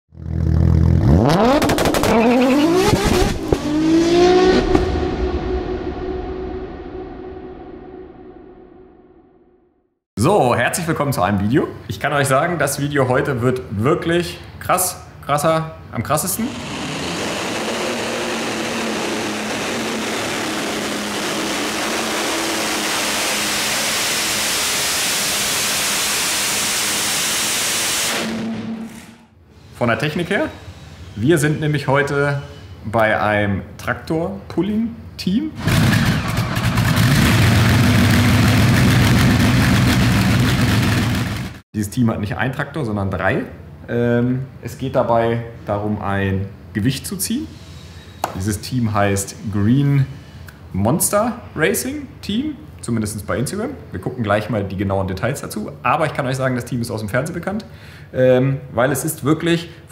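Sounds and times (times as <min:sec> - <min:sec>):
engine revving with crackling pops: 0:00.2 - 0:04.9, 0:16.5 - 0:29.1, 0:35.6 - 0:41.6
steady high note: 0:04.8 - 0:09.6.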